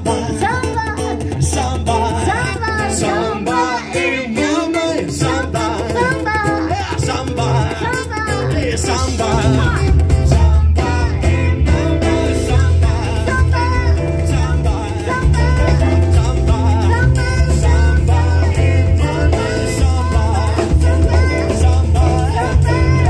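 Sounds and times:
live band playing samba: 0:00.0 - 0:23.0
person singing: 0:00.0 - 0:23.0.

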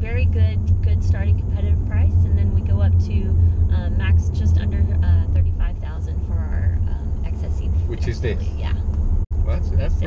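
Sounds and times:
car cabin road and engine drone: 0:00.0 - 0:10.0.

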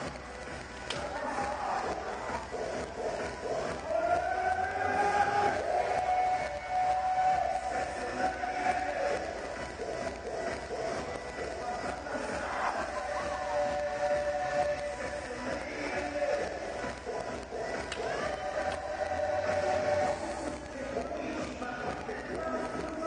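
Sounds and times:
murmur of large hall: 0:00.0 - 0:23.0.

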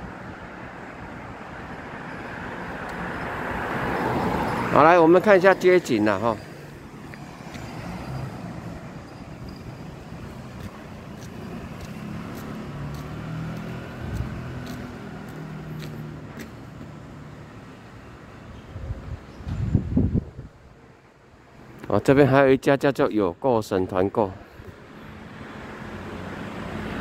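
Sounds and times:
road hum: 0:00.0 - 0:27.0
vehicle engine passing: 0:03.3 - 0:09.0, 0:10.5 - 0:16.5.

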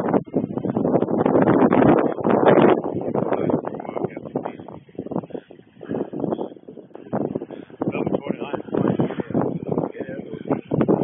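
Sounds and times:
rustling and buffeting on microphone: 0:00.0 - 0:11.0.

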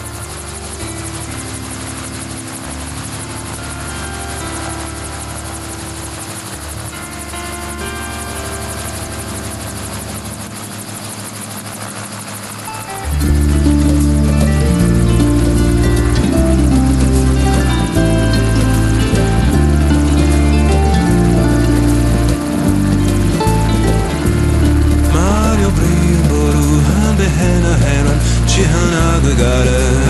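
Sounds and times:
background music: 0:00.0 - 0:30.0
helicopter rotor chopping: 0:00.0 - 0:30.0.

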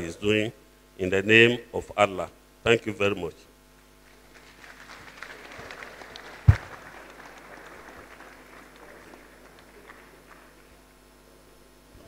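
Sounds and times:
audience applause: 0:04.1 - 0:10.8.

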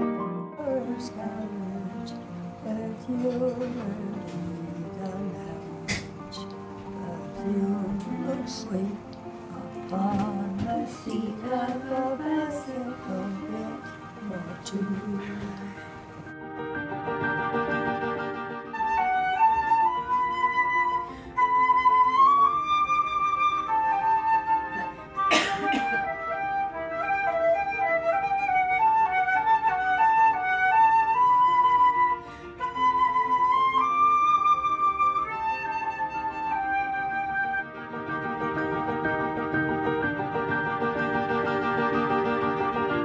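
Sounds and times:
solo flute melody: 0:00.0 - 0:43.0.

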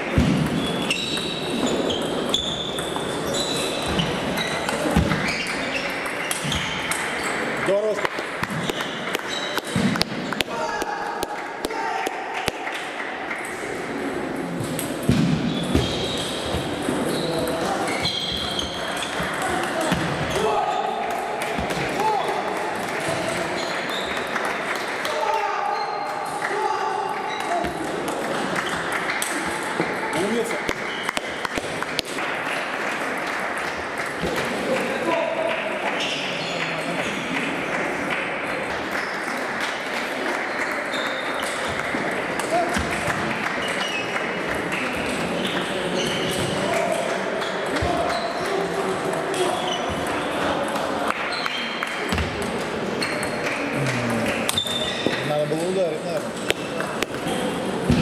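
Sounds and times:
indistinct background chatter: 0:00.0 - 0:58.0.

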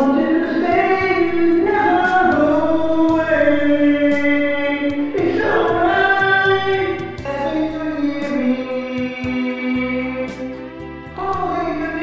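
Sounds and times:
person singing karaoke: 0:00.0 - 0:12.0
recorded music backing track: 0:00.0 - 0:12.0.

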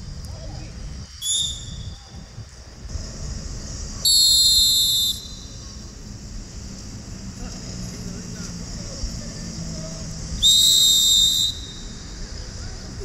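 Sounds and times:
outdoor background noise: 0:00.0 - 0:13.0
referee's whistle blasts: 0:01.2 - 0:02.0, 0:04.0 - 0:05.7, 0:10.4 - 0:12.2.

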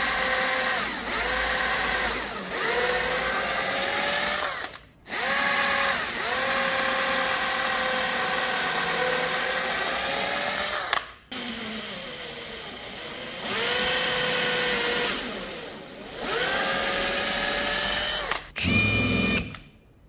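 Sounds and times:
electric drill boring into wood: 0:00.0 - 0:19.5.

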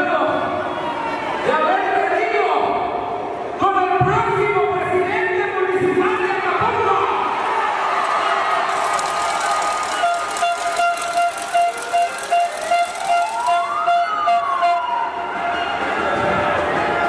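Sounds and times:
murmur of arena crowd: 0:00.0 - 0:17.0.

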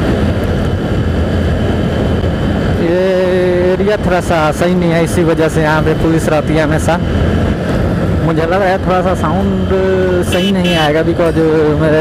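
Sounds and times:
wind buffeting a microphone: 0:00.0 - 0:10.2
motorcycle engine running: 0:00.0 - 0:12.0.

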